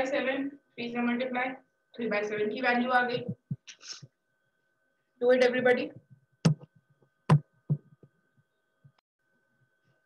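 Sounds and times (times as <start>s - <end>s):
faint high hum: 0.0s - 10.0s.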